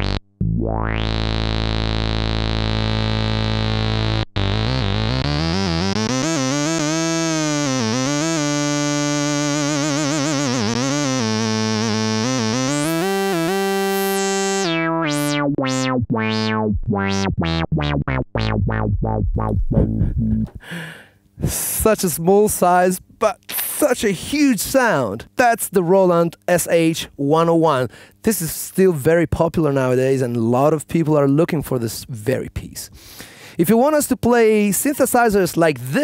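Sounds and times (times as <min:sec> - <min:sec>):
buzzy synth line: 0:00.0 - 0:20.6.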